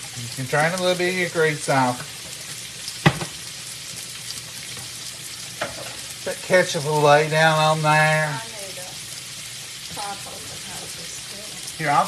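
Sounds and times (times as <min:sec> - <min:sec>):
meat sizzling in a skillet: 0:00.0 - 0:12.0.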